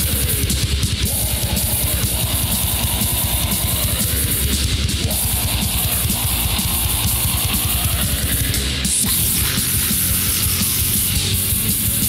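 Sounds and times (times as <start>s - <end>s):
distorted electric guitars: 0.0s - 12.0s
rapid kick drumming: 0.0s - 12.0s.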